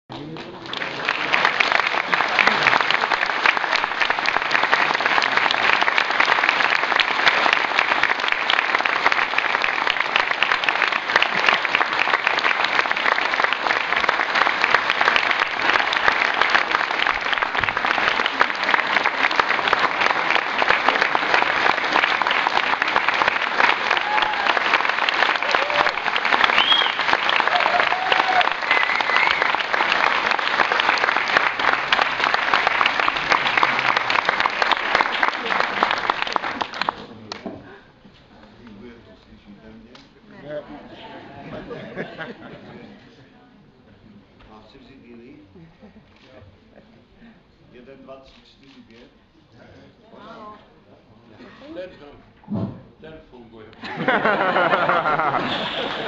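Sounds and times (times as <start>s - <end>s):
large audience applauding: 0.1s - 37.5s, 53.8s - 56.0s.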